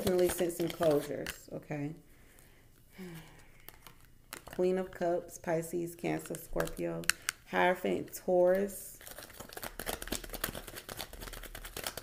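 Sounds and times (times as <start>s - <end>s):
cards being handled: 0.0s - 1.4s, 3.0s - 5.0s, 9.0s - 12.0s.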